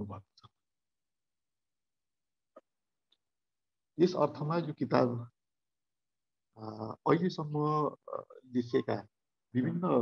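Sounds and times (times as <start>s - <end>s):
man speaking over video call: 0.0s - 0.3s, 4.0s - 5.3s, 6.6s - 10.0s.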